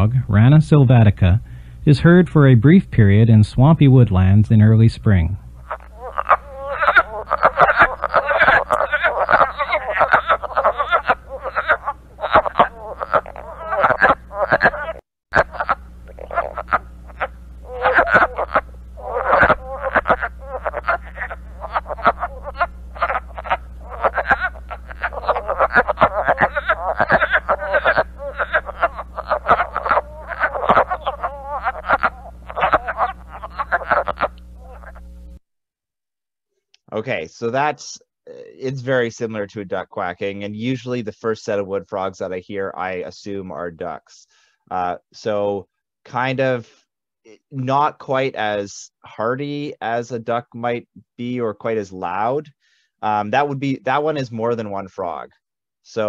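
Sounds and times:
low steady hum: 0:00.0 - 0:35.4, 0:36.8 - 0:44.0
frogs quacking: 0:05.5 - 0:35.1.

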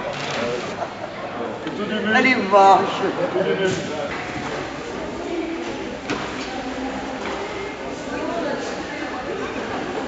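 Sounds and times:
murmur of distant voices: 0:00.0 - 0:10.0.

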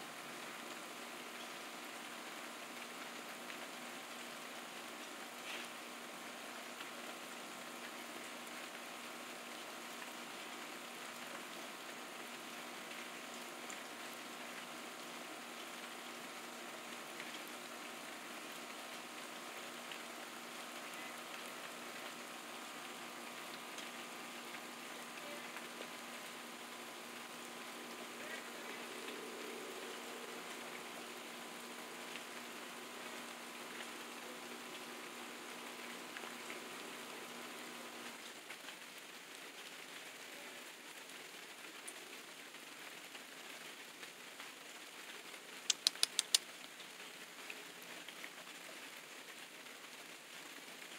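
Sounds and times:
faint steady hum: 0:00.0 - 0:50.9
rain falling: 0:00.0 - 0:50.9.

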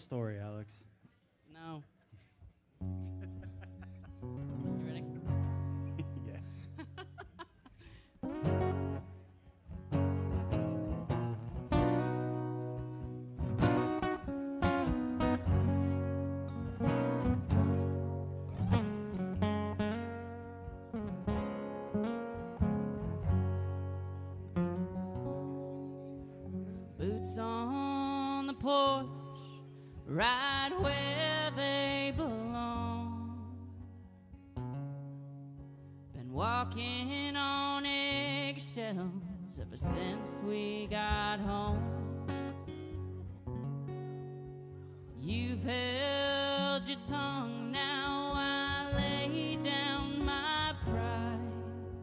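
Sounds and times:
acoustic guitar playing: 0:02.2 - 0:52.0.

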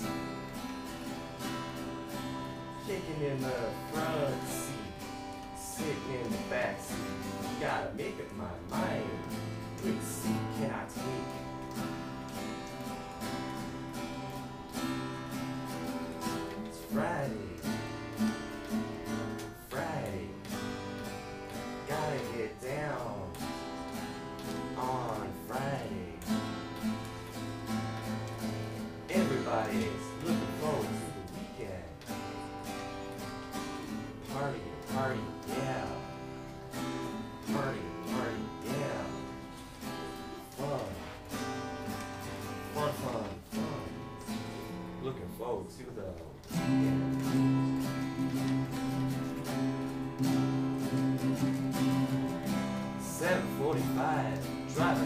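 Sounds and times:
acoustic guitars strumming: 0:00.0 - 0:55.0.

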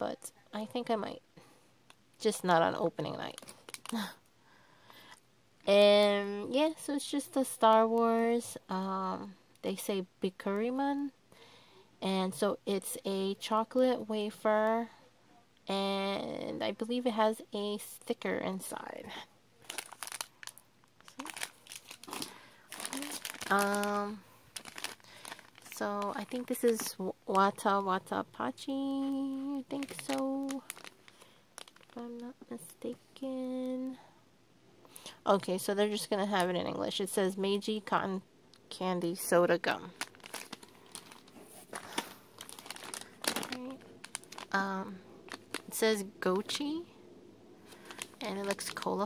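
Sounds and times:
plastic snack packets crinkling: 0:03.0 - 0:04.2, 0:19.6 - 0:28.2, 0:29.0 - 0:32.4, 0:39.7 - 0:46.8, 0:47.6 - 0:49.0.

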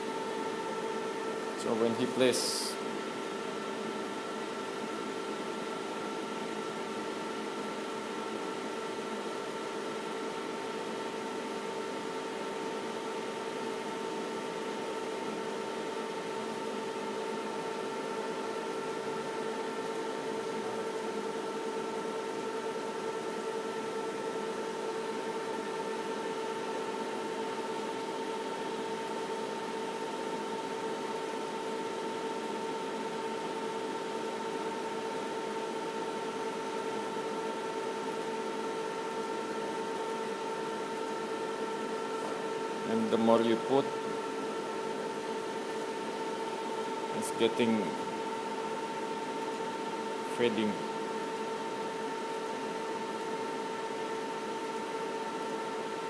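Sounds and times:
steady machine hum: 0:00.0 - 0:56.0.

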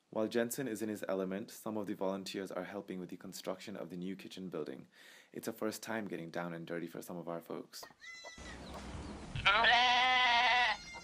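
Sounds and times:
faint background noise: 0:00.0 - 0:11.0
goat bleating: 0:08.0 - 0:08.7, 0:09.4 - 0:11.0.

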